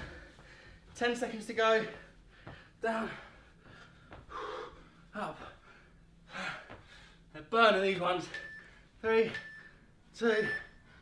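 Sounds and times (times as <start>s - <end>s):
man breathing hard: 0.0s - 1.0s, 1.8s - 7.3s
man speaking: 10.2s - 10.7s.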